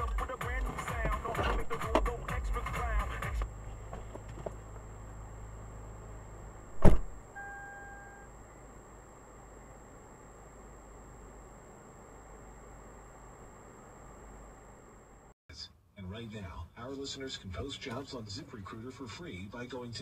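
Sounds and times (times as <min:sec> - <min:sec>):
faint car hum: 0:00.0 - 0:15.3
car collision impact: 0:06.7 - 0:07.2
short electronic beep: 0:07.3 - 0:08.3.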